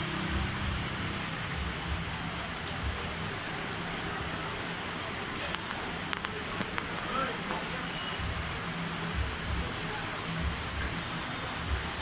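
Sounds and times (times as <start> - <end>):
rain on wet street: 0.0 - 12.0.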